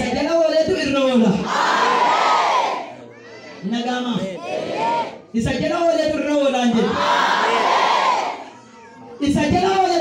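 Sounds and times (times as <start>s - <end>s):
man shouting into a microphone: 0.0s - 10.0s.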